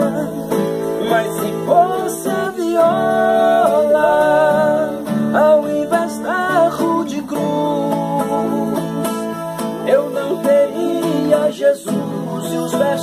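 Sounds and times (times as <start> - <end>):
acoustic guitar: 0.0 - 13.0
man singing: 0.0 - 13.0.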